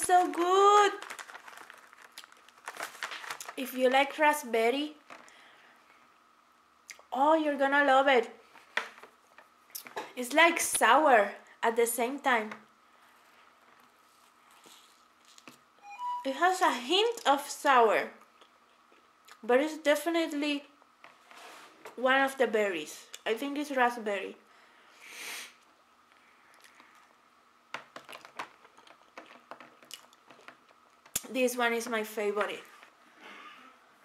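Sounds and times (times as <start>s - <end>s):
person chewing: 28.0s - 31.2s.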